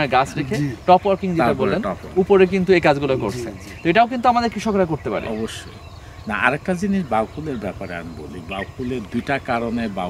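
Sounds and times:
man speaking: 0.0s - 5.7s, 6.3s - 10.0s.

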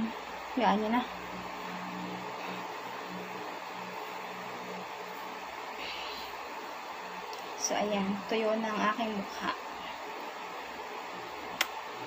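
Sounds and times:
electric fan whirring: 0.0s - 12.0s.

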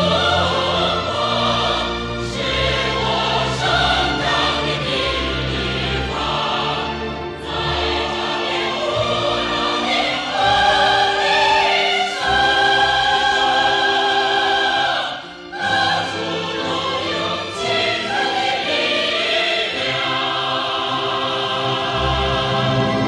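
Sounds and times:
orchestral accompaniment: 0.0s - 23.0s.

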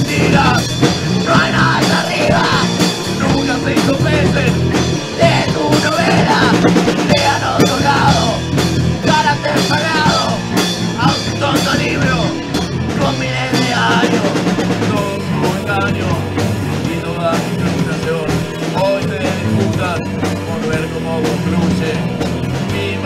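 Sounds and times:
drum kit: 0.0s - 23.0s
loud rock band music: 0.0s - 23.0s.

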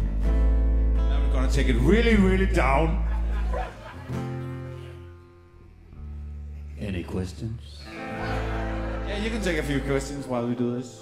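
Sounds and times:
quiet acoustic band music: 0.0s - 11.0s.

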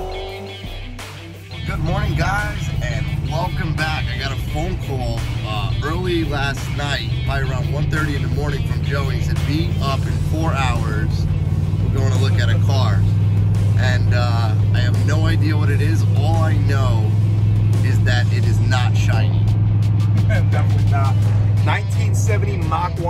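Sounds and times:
background music: 0.0s - 23.0s
men talking: 1.6s - 19.5s, 20.1s - 23.0s.

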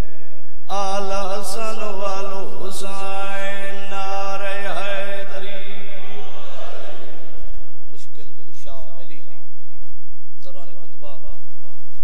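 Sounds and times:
man chanting through a microphone: 0.0s - 12.0s.

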